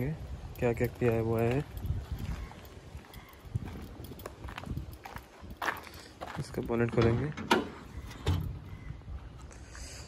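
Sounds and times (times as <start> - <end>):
footsteps on dirt and gravel: 0.5 - 8.2.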